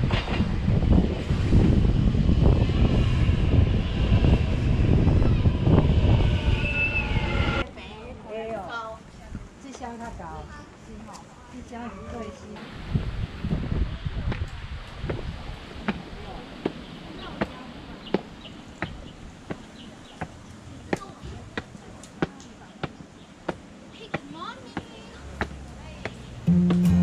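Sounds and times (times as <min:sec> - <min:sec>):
footsteps on concrete stairs: 0:16.6 - 0:26.8
music: 0:26.5 - 0:27.0.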